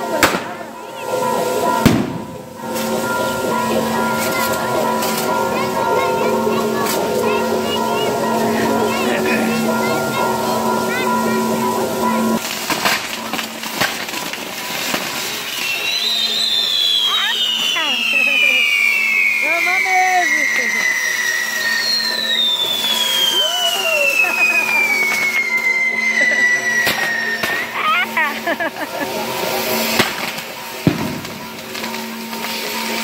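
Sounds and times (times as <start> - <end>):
fireworks crackling and popping: 0.0 - 33.0
falling firework whistles: 12.3 - 33.0.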